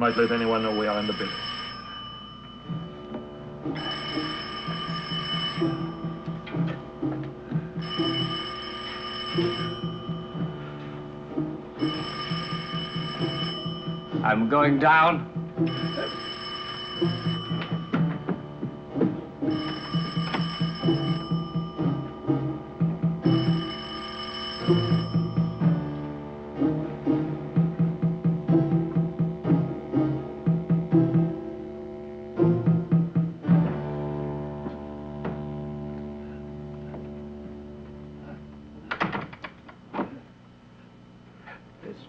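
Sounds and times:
telephone bell ringing: 0:00.0 - 0:26.1
tense low music: 0:02.6 - 0:08.5, 0:09.4 - 0:14.3, 0:15.2 - 0:16.1, 0:17.0 - 0:23.8, 0:24.7 - 0:38.9.

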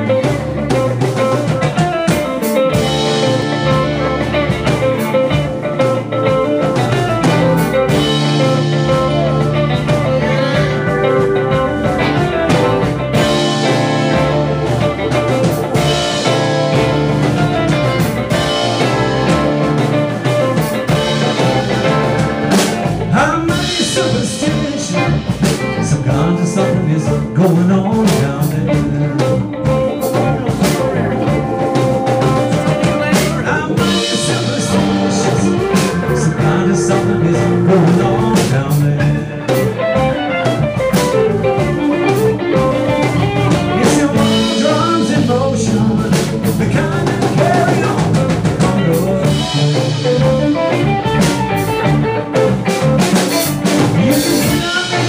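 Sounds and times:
bass guitar: 0:00.0 - 0:55.0
drum kit: 0:00.0 - 0:55.0
electric guitar lead lines: 0:00.0 - 0:55.0
man singing: 0:22.9 - 0:40.1, 0:41.0 - 0:50.7, 0:53.3 - 0:55.0.

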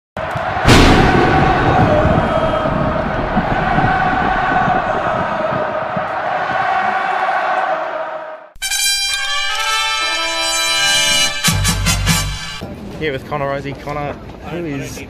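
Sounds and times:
crowd-like roar: 0:00.2 - 0:08.5
loud hit: 0:00.4 - 0:05.6.

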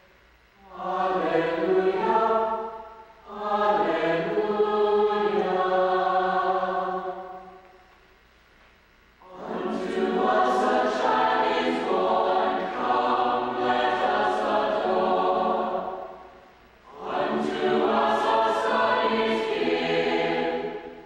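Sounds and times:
mixed choir singing: 0:00.6 - 0:07.6, 0:09.2 - 0:21.0.

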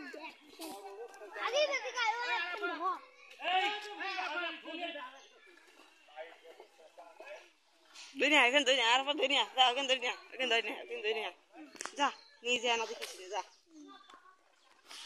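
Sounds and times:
children talking: 0:00.0 - 0:15.0.

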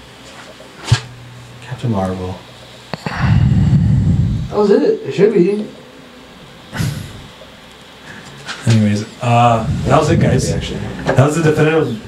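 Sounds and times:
short breathy puff: 0:06.8 - 0:07.3.

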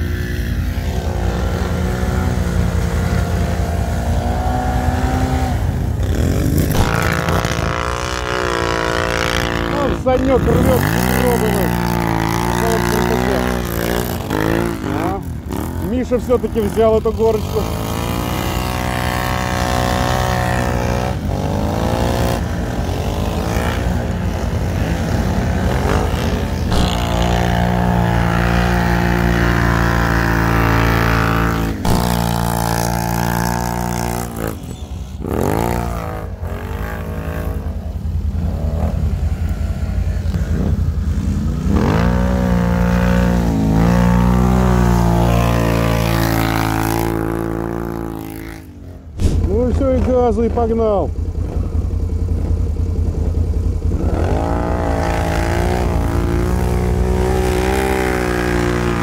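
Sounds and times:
quad bike engine revving: 0:00.0 - 0:59.0.

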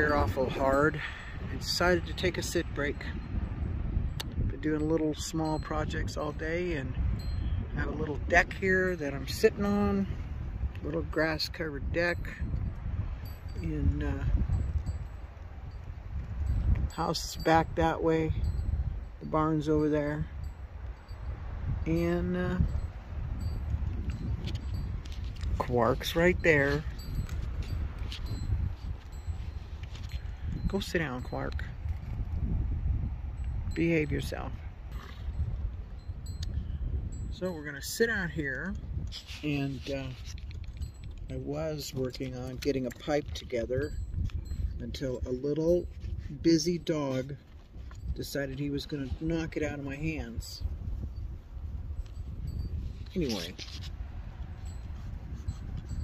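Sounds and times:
steady low rumble: 0:00.0 - 0:56.0
wind buffeting microphone: 0:00.0 - 0:56.0.

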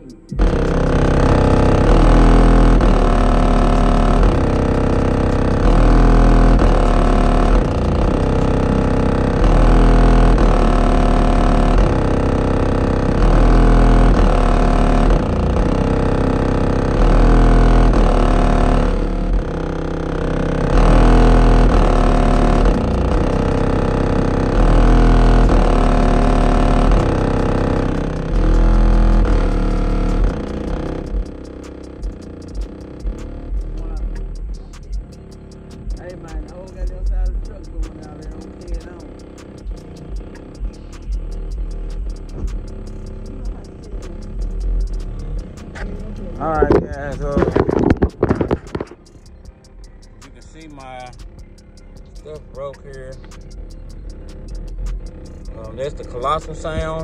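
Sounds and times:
bass-heavy music through subwoofer: 0:00.0 - 0:57.0.

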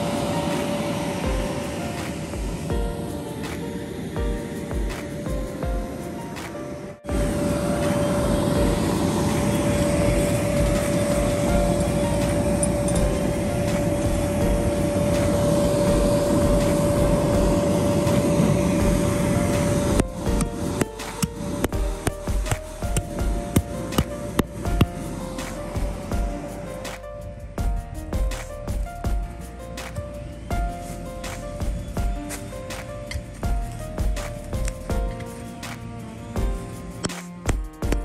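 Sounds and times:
electric blower rushing air: 0:00.0 - 0:38.0
music with clicking beat: 0:00.0 - 0:38.0.

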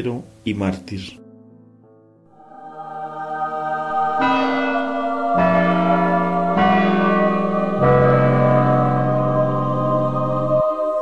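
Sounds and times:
church bells ringing: 0:02.4 - 0:11.0.

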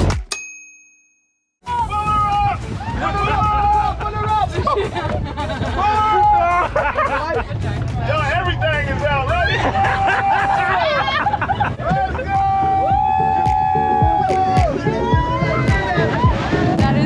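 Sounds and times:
excited voices: 0:01.7 - 0:17.0
wind rumble: 0:01.7 - 0:17.0.

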